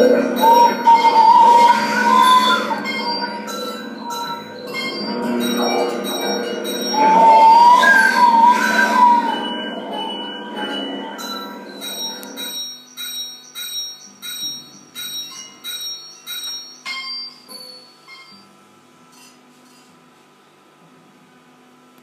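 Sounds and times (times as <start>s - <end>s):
bell-like metallic strikes: 0.0s - 18.4s
wavering tone: 0.0s - 18.4s.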